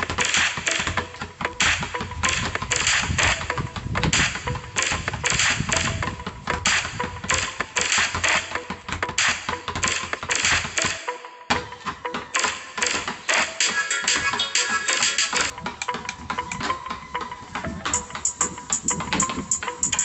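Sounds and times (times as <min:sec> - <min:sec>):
background music: 0:00.0 - 0:20.0
basketballs dribbled on concrete: 0:00.0 - 0:20.0.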